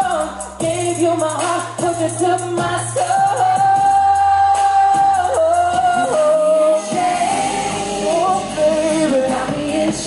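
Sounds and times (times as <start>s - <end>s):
musical backing: 0.0s - 10.0s
male vocal group singing: 2.6s - 10.0s.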